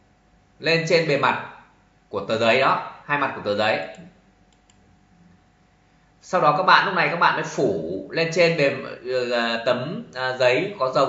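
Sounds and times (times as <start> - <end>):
faint hum: 0.0 - 11.0
faint short clicks: 3.9 - 4.8.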